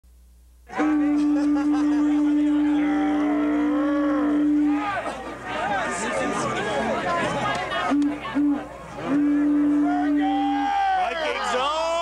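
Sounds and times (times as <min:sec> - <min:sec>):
animal horn blown: 0:00.7 - 0:05.0, 0:07.9 - 0:10.7
crowd voices: 0:00.7 - 0:12.0.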